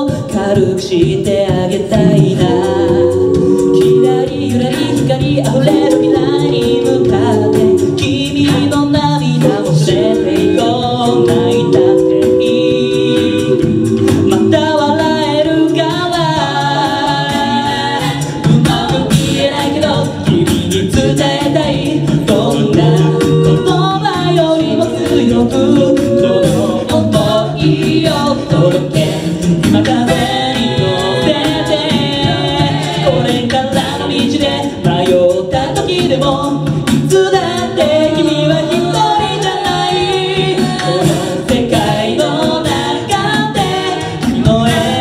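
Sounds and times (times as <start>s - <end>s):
group singing a cappella: 0.0s - 45.0s
steady clicking beat: 0.0s - 45.0s.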